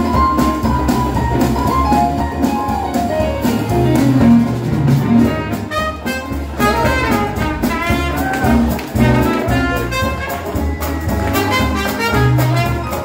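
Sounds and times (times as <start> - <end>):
drums: 0.0 - 13.0
piano: 0.0 - 13.0
string bass: 0.0 - 13.0
trombone: 0.0 - 13.0
trumpet: 5.1 - 13.0
saxophone: 5.2 - 13.0.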